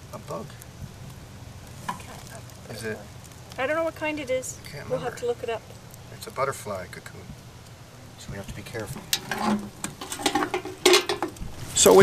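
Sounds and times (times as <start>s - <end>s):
metal box clicks and rattles: 9.1s - 11.4s.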